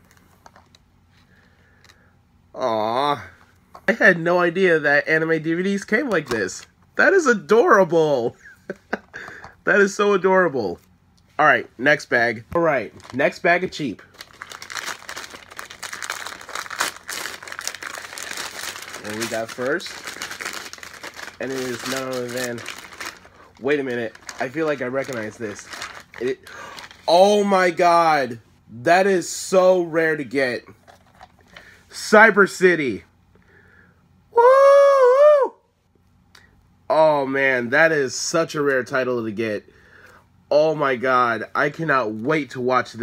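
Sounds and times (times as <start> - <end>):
man speaking: 11.4 - 14.1, 19.0 - 20.0, 21.4 - 22.8, 23.6 - 30.6
paper bag crinkling: 12.8 - 27.2
man exclaiming in surprise: 34.4 - 35.6.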